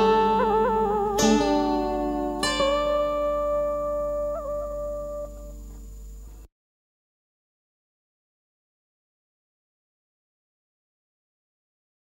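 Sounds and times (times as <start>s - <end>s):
guitar held note bent: 0.0s - 6.4s.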